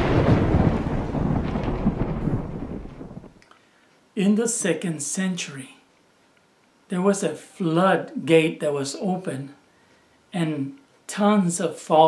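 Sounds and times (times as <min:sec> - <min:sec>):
deep rumbling boom: 0:00.0 - 0:03.4.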